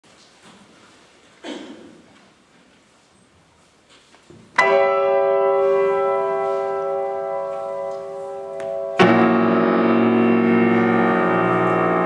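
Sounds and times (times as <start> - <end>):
piano chord ringing: 4.6 - 12.0.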